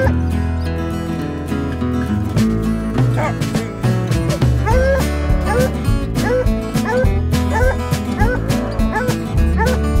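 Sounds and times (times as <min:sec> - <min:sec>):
music with heavy bass beat: 0:02.4 - 0:10.0
hound barking: 0:03.1 - 0:03.7, 0:04.3 - 0:09.9.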